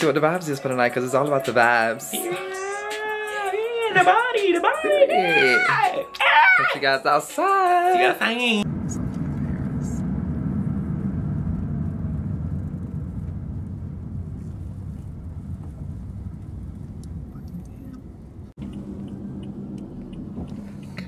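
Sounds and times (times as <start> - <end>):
road and engine rumble inside car: 8.6 - 21.0.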